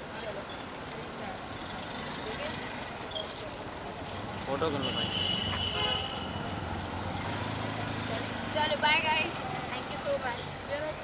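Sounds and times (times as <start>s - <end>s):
vehicle horn: 4.8s - 6.4s.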